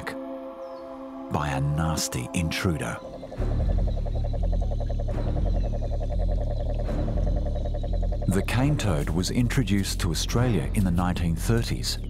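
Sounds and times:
background music: 0.0s - 12.0s
toad trilling call: 2.3s - 8.8s.

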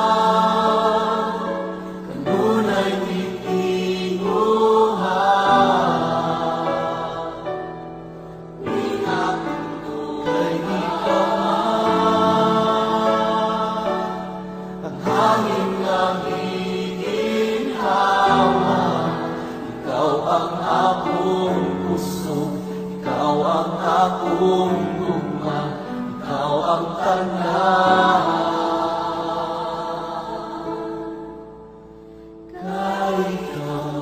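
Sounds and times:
person singing worship song: 0.0s - 34.0s.

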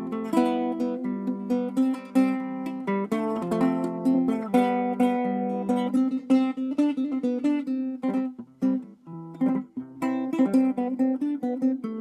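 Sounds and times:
acoustic guitar fingerpicked: 0.0s - 12.0s.

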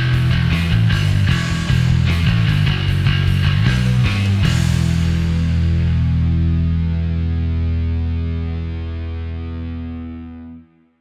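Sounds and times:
distorted electric bass note: 0.0s - 10.7s.

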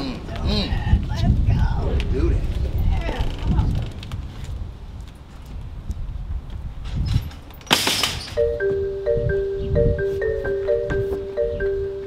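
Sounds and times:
metal screen door clattering shut: 6.8s - 8.4s
footsteps on porch: 8.6s - 12.0s.

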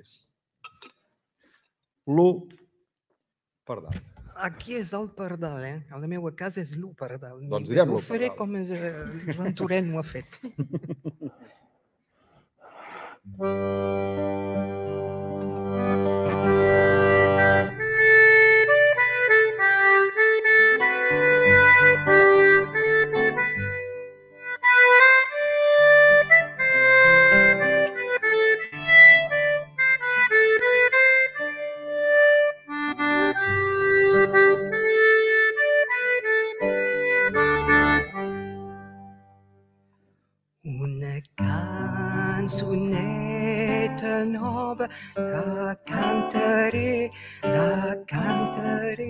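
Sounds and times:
button accordion playing a tune: 13.3s - 39.4s.

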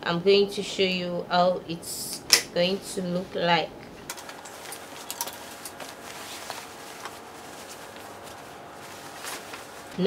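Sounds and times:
fabric rustling: 4.0s - 10.0s.

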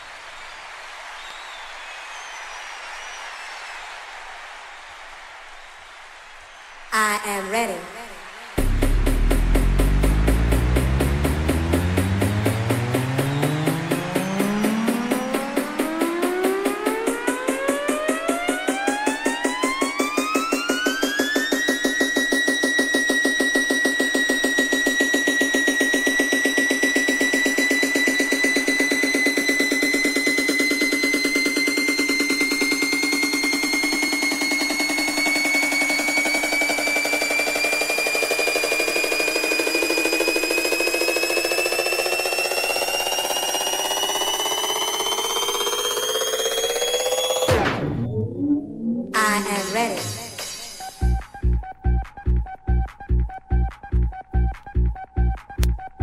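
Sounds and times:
fast pulsing dance beat: 7.0s - 56.0s
rising synth sweep: 8.6s - 49.2s.

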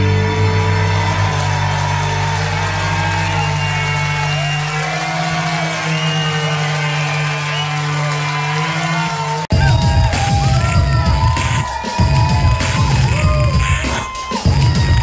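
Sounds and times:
rock band chords ringing: 0.0s - 4.1s
crowd whooping: 0.0s - 15.0s.

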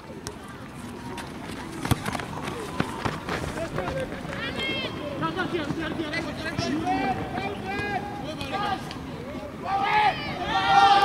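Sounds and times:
people shouting and calling: 9.5s - 11.0s
high shout: 9.6s - 11.0s.

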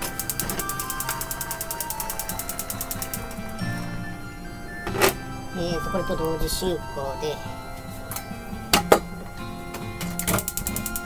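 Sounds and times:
gas igniter clicking rapidly: 0.0s - 3.6s, 10.0s - 11.0s.

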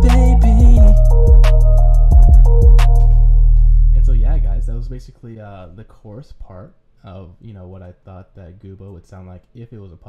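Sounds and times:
man's voice: 0.0s - 1.2s, 3.8s - 10.0s
drum beat: 0.0s - 3.2s
held bass note and chord: 0.0s - 5.0s.

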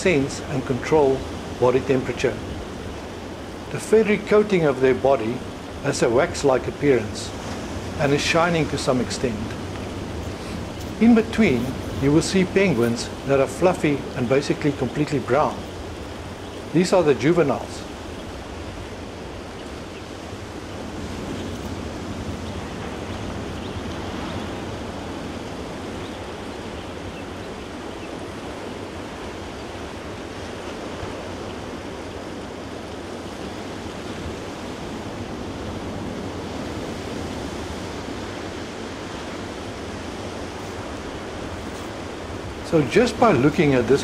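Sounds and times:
ocean surf rushing: 0.0s - 44.0s.

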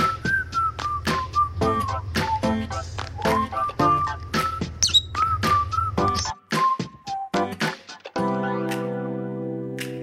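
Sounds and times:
whistled melody: 0.0s - 7.8s.

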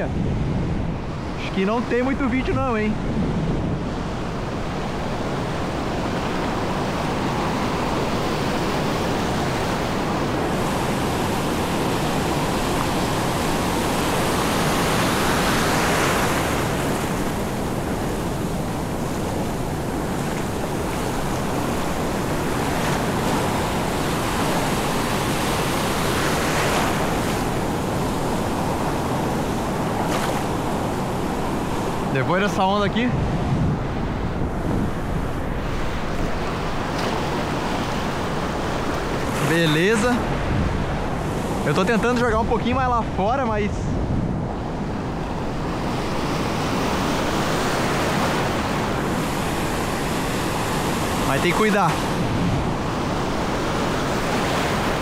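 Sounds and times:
ocean surf breaking: 0.0s - 55.0s.

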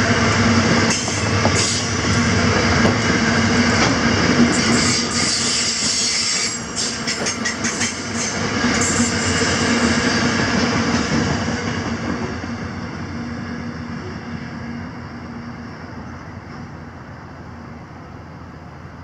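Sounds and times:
freight train rumbling past: 0.0s - 19.0s.

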